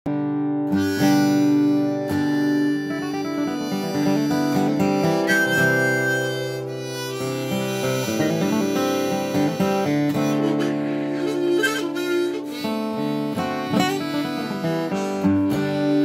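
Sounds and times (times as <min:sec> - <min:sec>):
acoustic guitar strumming: 0:00.1 - 0:16.0
harmonica playing: 0:00.7 - 0:16.0.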